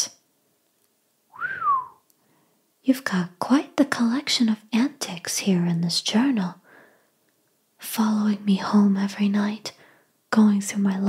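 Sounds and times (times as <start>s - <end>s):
woman whistling: 1.3s - 2.0s.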